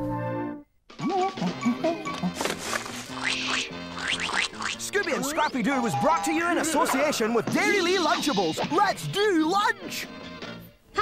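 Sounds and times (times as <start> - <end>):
comic cartoon sound effects: 0.9 - 2.4, 3.0 - 8.9.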